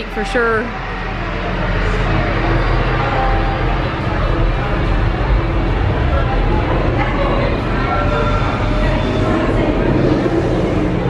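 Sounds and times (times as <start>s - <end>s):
indistinct voices: 0.0s - 11.0s
steady low rumble: 0.0s - 11.0s.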